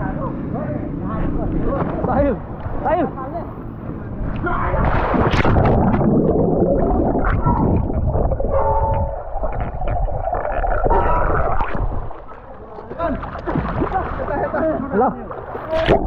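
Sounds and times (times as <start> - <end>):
underwater bubbles and churning water: 4.1 - 16.0.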